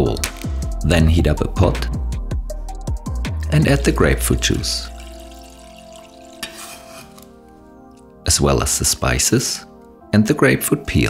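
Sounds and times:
liquid hissing in hot pan: 4.5s - 7.3s.

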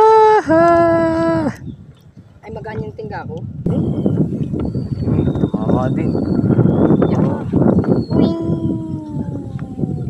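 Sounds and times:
long howl-like call: 8.0s - 10.0s.

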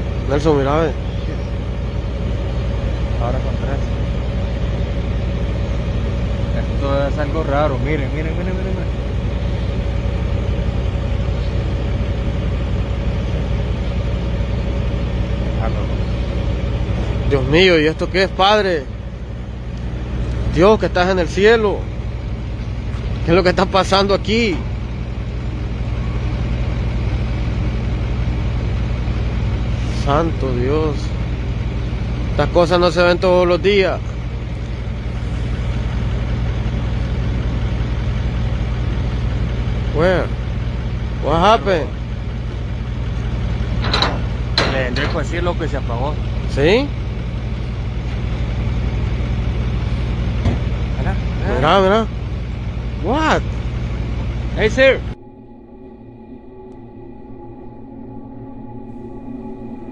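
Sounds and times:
engine idling: 0.0s - 59.9s
low mechanical hum: 0.0s - 59.9s
faint high steady tone: 54.6s - 59.9s.

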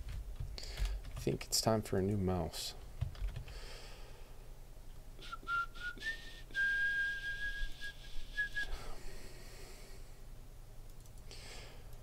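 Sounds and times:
man whistling: 5.2s - 9.0s
faint clicks: 10.9s - 12.0s.

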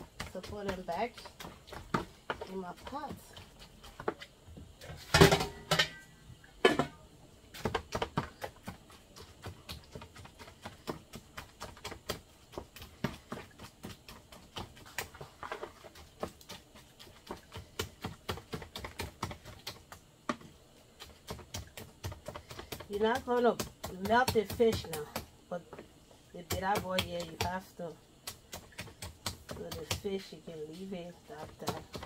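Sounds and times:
metal lid clattering on pot: 5.2s - 6.0s.

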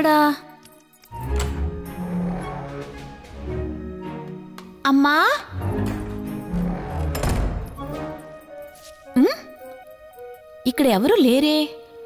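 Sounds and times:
background music low tones: 0.0s - 12.0s.

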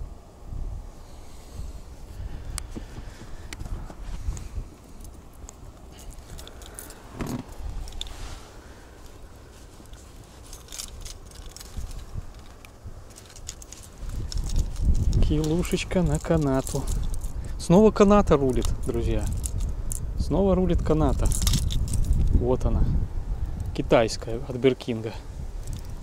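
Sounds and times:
wind on microphone: 0.0s - 26.0s
fishing gear rattling: 4.8s - 17.5s, 18.3s - 20.1s, 20.8s - 22.4s, 25.6s - 26.0s.

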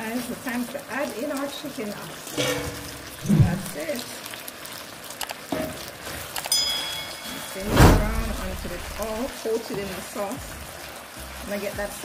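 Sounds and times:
high ringing chime: 6.5s - 7.6s
faint hiss: 7.4s - 9.3s.

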